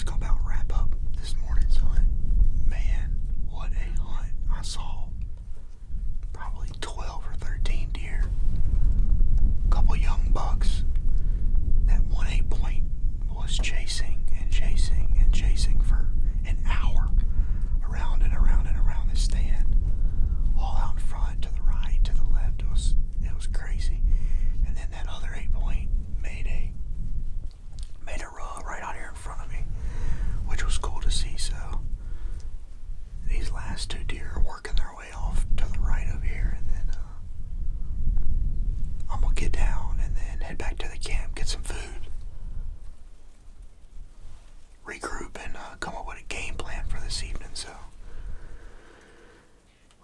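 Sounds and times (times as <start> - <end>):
person whispering: 0.0 - 5.2, 6.2 - 8.3, 9.7 - 10.9, 11.9 - 17.2, 17.8 - 19.7, 20.6 - 26.8, 27.8 - 29.7, 30.4 - 31.9, 33.2 - 37.2, 39.0 - 42.2, 44.8 - 48.0
steady low rumble: 0.0 - 50.0.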